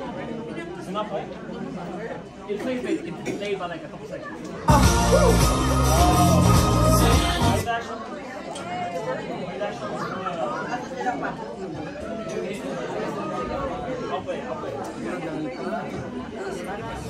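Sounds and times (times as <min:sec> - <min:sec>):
indistinct chatter: 0:00.0 - 0:17.0.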